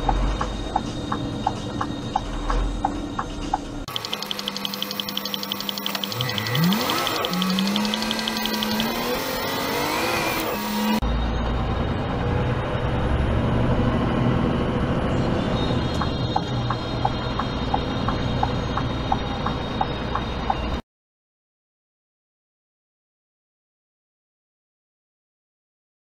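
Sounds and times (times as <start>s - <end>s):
engine accelerating: 0.0s - 20.8s
engine and road rumble in cab: 0.0s - 20.8s
fast regular ticking: 3.9s - 9.6s.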